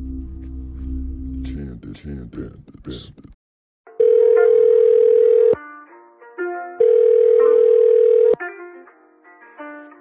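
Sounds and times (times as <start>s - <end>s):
telephone dial tone: 4.0s - 5.6s, 6.8s - 8.4s.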